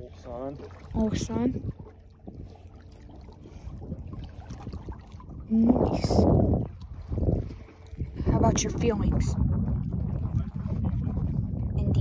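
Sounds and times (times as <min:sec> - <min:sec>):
outboard motor running: 0:00.0 - 0:12.0
wind buffeting microphone: 0:00.0 - 0:12.0.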